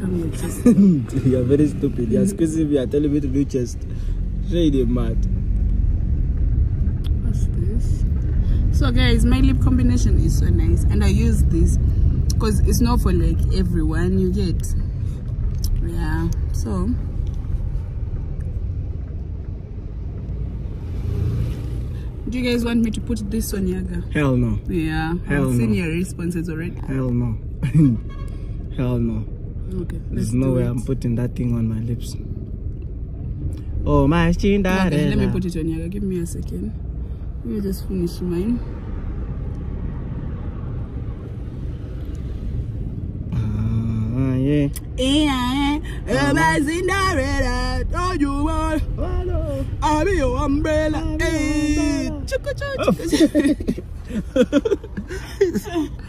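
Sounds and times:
low rumble inside car cabin: 0.0s - 56.0s
car cabin rumble: 6.0s - 20.6s, 43.1s - 56.0s.

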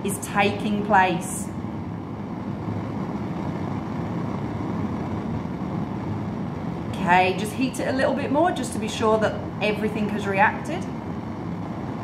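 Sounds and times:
gas flame burning: 0.0s - 12.0s.

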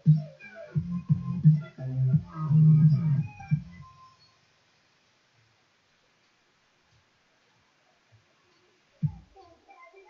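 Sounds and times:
electronic music with bass line: 0.0s - 4.0s.

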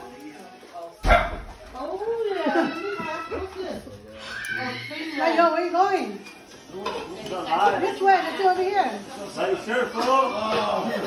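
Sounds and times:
faint voices: 0.0s - 11.0s
dog barking: 1.0s - 1.5s.

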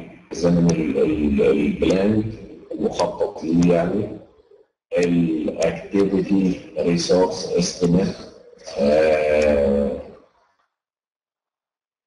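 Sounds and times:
man saying uhh: 0.0s - 4.1s, 5.0s - 10.1s.

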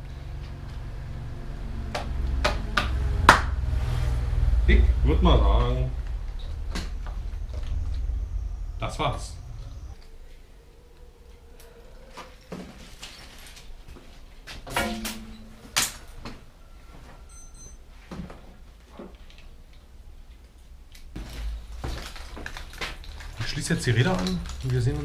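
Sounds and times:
low steady hum: 0.0s - 17.8s
small objects knocking and clicking: 21.2s - 25.0s.

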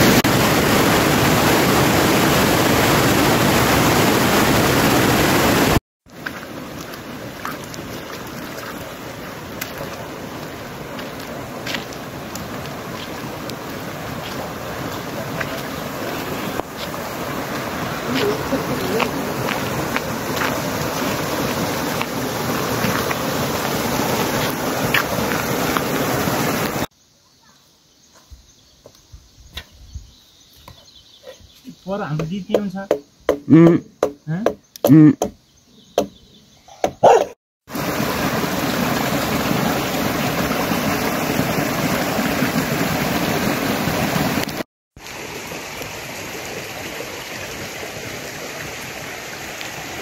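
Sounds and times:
steady rain falling: 0.0s - 26.9s, 37.7s - 50.0s.

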